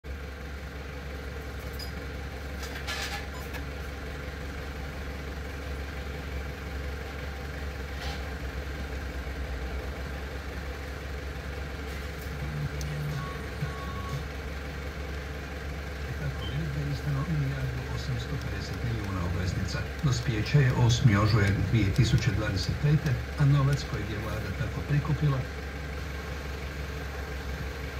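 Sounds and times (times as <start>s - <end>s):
vehicle engine idling: 0.0s - 27.9s
voice from car radio: 12.3s - 14.3s, 16.0s - 25.6s.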